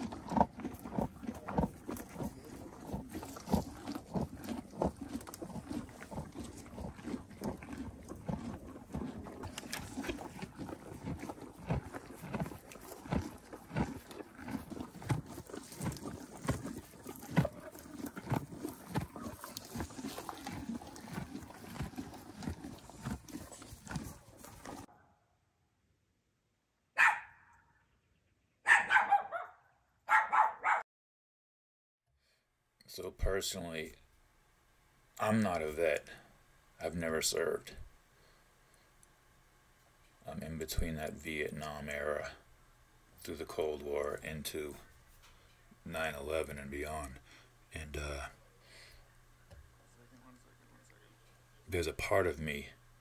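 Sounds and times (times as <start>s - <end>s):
horses chewing hay: 0.0s - 24.9s.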